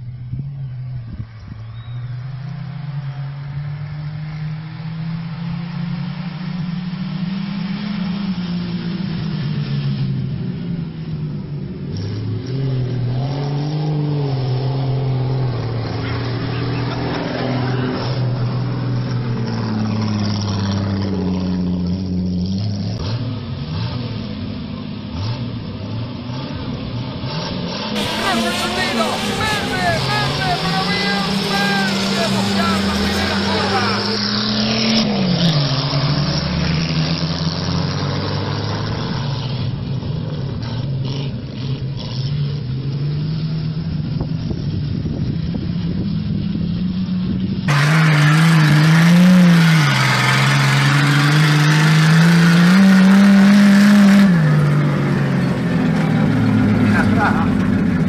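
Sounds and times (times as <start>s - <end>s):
racing car engines revving: 0.0s - 58.0s.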